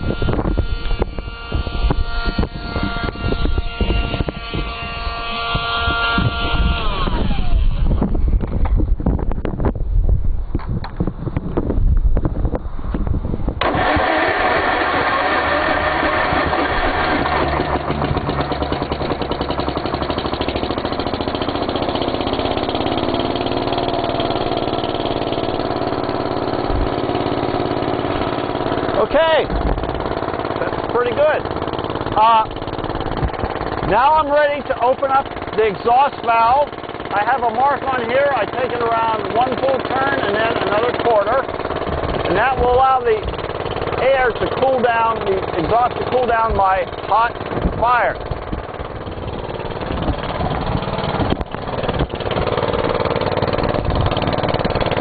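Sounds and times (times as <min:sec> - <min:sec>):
tractor engine cranking: 0:00.0 - 0:08.7, 0:13.6 - 0:55.0
small blower whining: 0:00.0 - 0:09.0, 0:13.6 - 0:55.0
tractor engine running: 0:00.0 - 0:55.0.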